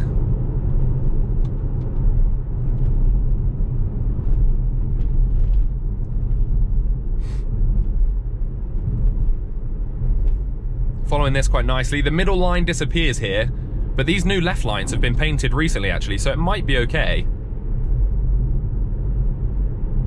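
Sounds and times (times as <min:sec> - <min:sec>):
road and tyre rumble in car cabin: 0:00.0 - 0:20.0.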